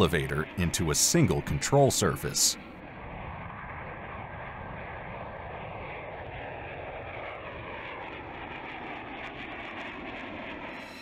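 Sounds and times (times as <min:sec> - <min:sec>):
jet engine drone with whine: 0:00.0 - 0:11.0.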